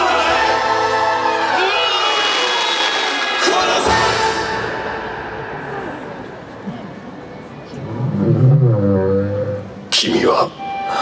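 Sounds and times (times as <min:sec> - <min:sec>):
orchestral and choral music: 0:00.0 - 0:06.6.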